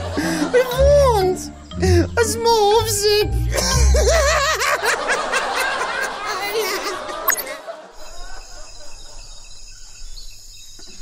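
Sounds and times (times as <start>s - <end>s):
man giggling laugh: 3.6s - 9.4s.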